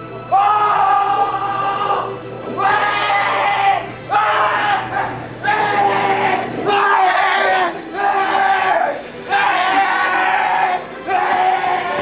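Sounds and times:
voices shouting long calls: 0.3 - 12.0.

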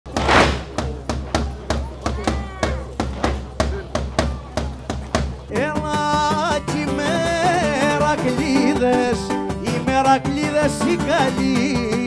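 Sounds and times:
bass drum beating: 0.1 - 10.5
folk band melody instruments: 0.1 - 12.0.

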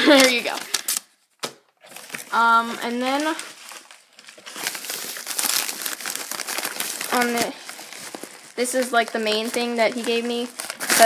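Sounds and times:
plastic mailer crinkling: 0.0 - 11.0.

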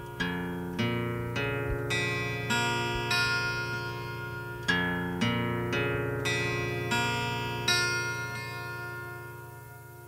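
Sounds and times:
strummed guitar chord ringing: 0.0 - 10.0.

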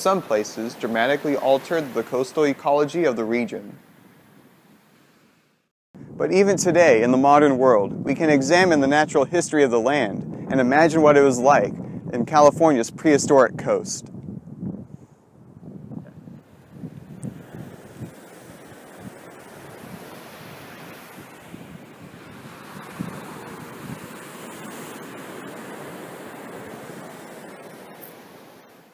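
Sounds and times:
ocean surf on rocks: 0.0 - 5.5, 16.2 - 28.9
wind buffeting microphone: 6.0 - 28.7.

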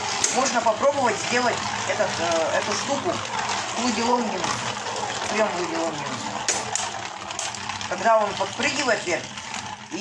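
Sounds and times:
spinning tops whirring on metal: 0.0 - 10.0.

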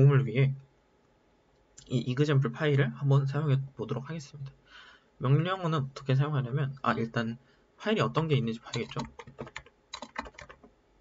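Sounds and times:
computer keyboard typing: 8.7 - 10.7.

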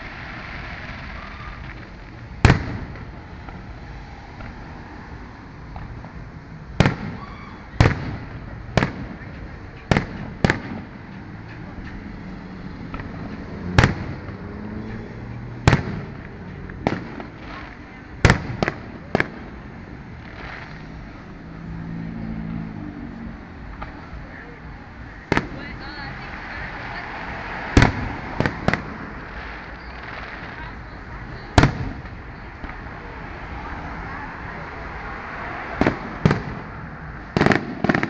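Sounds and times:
fireworks bursting with echo: 0.0 - 21.3, 23.6 - 38.0.

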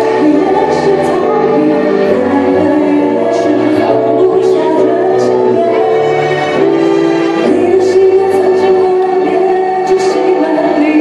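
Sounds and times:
woman singing into microphone: 0.0 - 6.1, 7.4 - 11.0
backing track music: 0.0 - 11.0.

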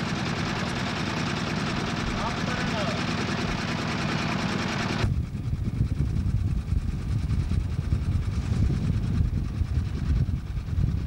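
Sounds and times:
boat engine running: 0.0 - 11.0
wind buffeting microphone: 5.0 - 11.0.

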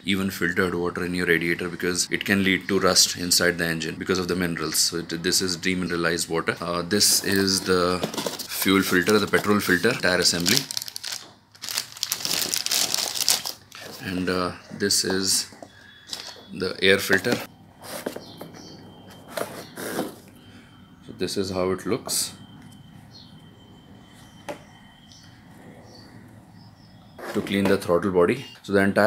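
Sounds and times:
plastic bag crinkling: 7.0 - 14.2, 16.0 - 17.5
faint high chirps: 13.8 - 27.4.

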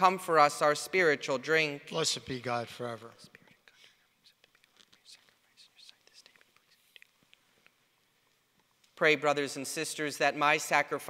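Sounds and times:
person whispering prayer: 1.9 - 7.3.

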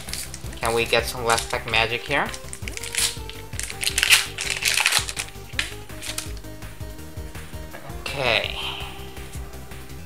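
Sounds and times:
foil pack tearing and crinkling: 0.0 - 6.4
background music: 0.0 - 10.0.

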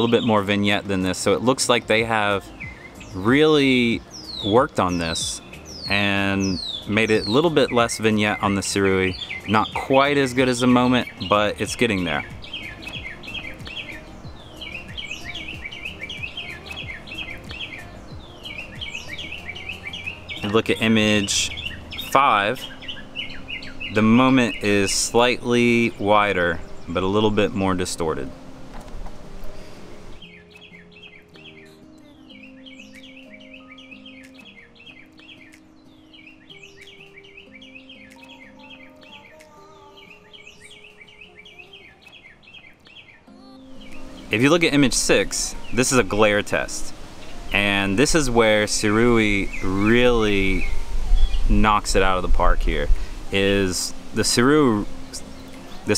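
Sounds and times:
slow melody of held notes: 0.0 - 55.9
songbirds chirping: 0.0 - 55.9.

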